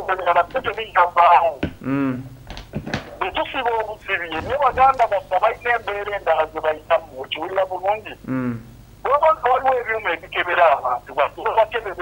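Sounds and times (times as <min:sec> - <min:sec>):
person talking over telephone: 0:00.0 - 0:02.2, 0:03.2 - 0:12.0.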